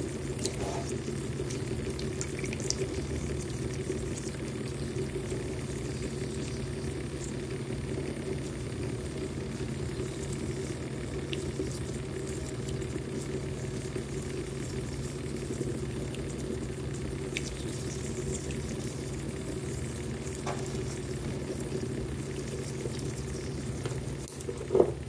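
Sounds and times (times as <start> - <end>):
small motors humming under water: 0.0 - 25.0.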